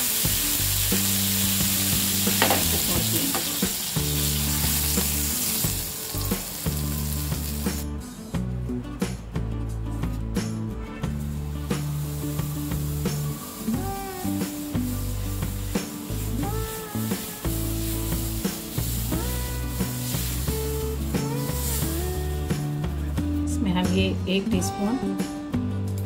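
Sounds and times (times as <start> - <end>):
batter sizzling on a hot pan: 0.0 - 7.8, 11.5 - 22.7
background music: 0.0 - 26.0.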